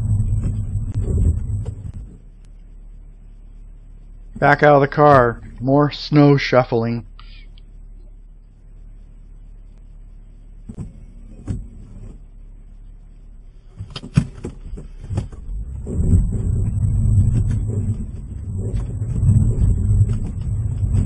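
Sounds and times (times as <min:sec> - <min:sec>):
car engine revving under load: 0:00.0 - 0:02.4, 0:13.7 - 0:21.0.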